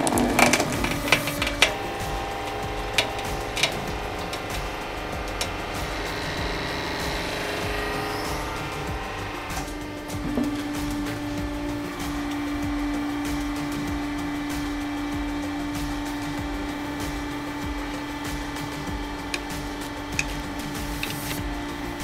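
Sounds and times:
hydraulic pump humming: 0:00.0 - 0:22.0.

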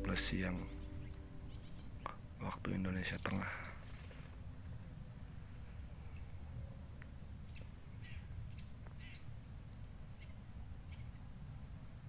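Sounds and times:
high bird chirps: 0:00.0 - 0:02.2
steady low rumble: 0:00.0 - 0:02.8.

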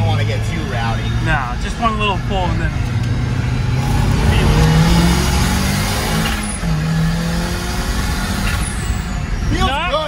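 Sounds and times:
car engine accelerating hard: 0:00.0 - 0:10.0.

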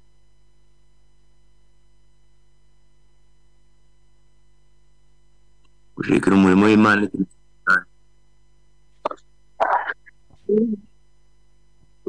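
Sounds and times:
faint steady hum: 0:00.0 - 0:12.0
man talking over video call: 0:06.0 - 0:07.8
short vocal sound: 0:09.1 - 0:10.8.

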